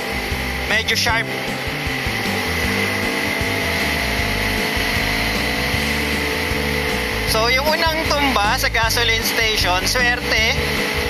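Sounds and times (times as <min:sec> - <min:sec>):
background music: 0:00.0 - 0:11.0
motorcycle engine cruising: 0:00.0 - 0:11.0.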